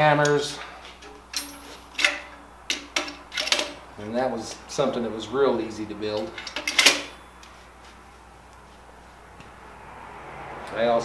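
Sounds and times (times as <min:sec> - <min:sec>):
metal tools clinking on rack: 0:00.2 - 0:03.8, 0:06.0 - 0:07.5.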